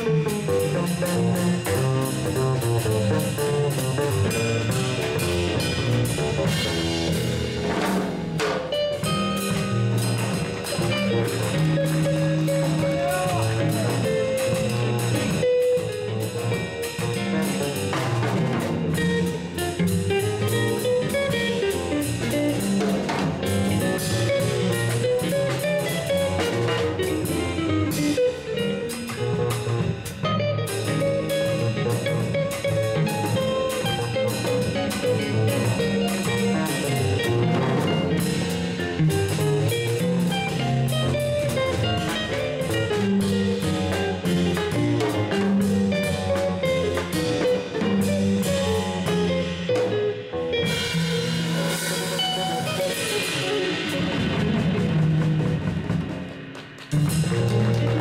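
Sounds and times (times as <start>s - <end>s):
drum kit: 0.0s - 58.0s
electric guitar: 0.0s - 58.0s
plucked double bass: 0.0s - 58.0s.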